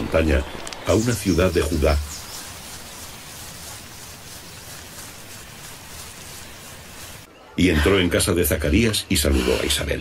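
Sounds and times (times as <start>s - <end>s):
outdoor ambience: 0.0s - 10.0s.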